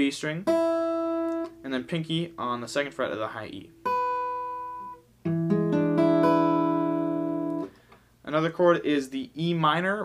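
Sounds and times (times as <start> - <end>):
acoustic guitar strings picked: 0.4 - 8.0.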